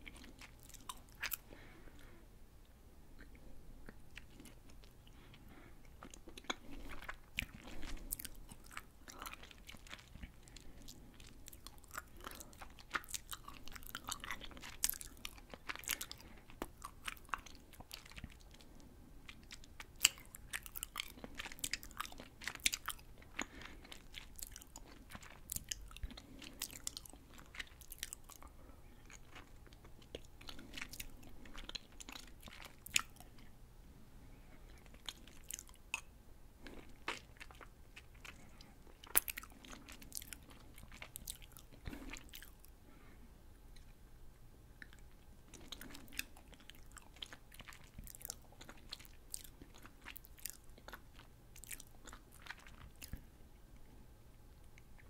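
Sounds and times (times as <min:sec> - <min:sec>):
chewing jelly candy: 0:00.0 - 0:02.2, 0:03.2 - 0:33.6, 0:34.4 - 0:42.8, 0:44.8 - 0:55.0.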